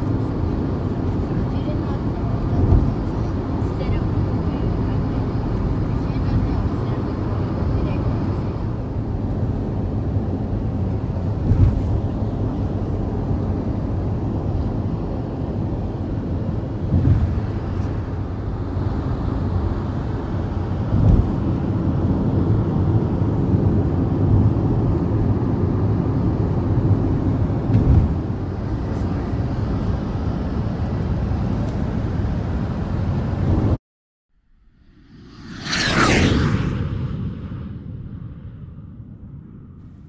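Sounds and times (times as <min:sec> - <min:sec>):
road and engine noise inside vehicle: 0:00.0 - 0:33.8.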